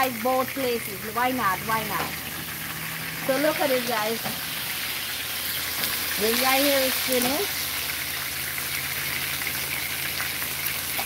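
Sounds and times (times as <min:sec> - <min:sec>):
fish sizzling in hot oil: 0:00.0 - 0:11.0.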